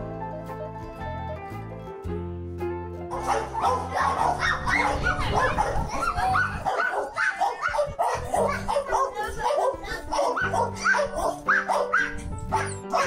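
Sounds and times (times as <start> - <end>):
background music: 0.0 - 13.0
dog barking: 3.1 - 13.0.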